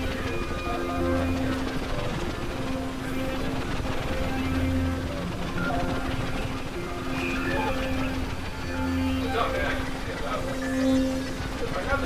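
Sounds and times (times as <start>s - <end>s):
constant noisy hiss: 0.0s - 12.0s
synthesizer tones: 0.0s - 12.0s.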